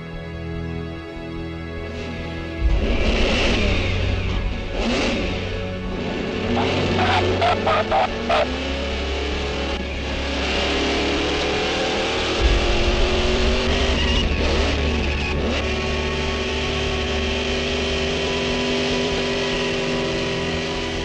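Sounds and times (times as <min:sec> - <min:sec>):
background music: 0:00.0 - 0:21.0
racing car engine: 0:00.0 - 0:21.0.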